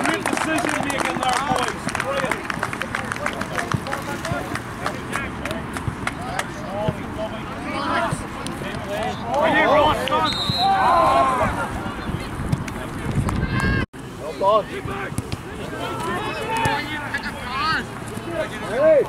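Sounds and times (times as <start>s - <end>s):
people shouting on a pitch: 8.9s - 11.9s, 14.5s - 19.0s.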